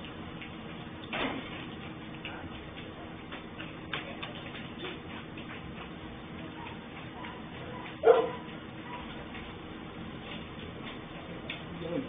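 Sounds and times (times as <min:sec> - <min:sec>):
street background noise: 0:00.0 - 0:12.0
dog barking: 0:06.5 - 0:09.1.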